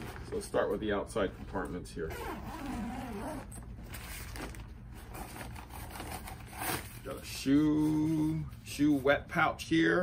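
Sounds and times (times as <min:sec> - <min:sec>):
bag zipper being pulled open: 0:02.1 - 0:03.6.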